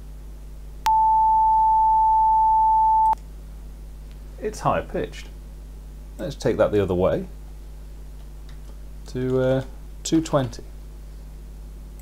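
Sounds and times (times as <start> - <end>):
steady sine-wave tone: 0.0 - 3.2.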